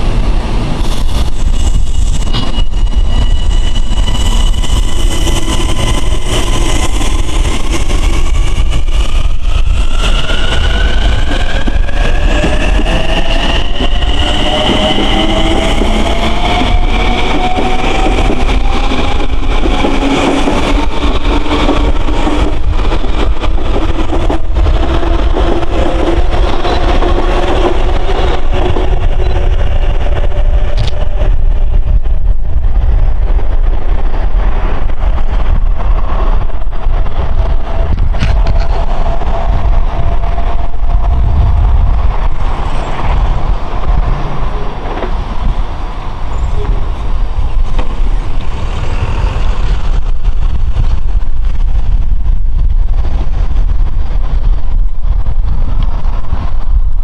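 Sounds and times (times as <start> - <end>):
wheels rumbling on rails: 0.0 - 57.0.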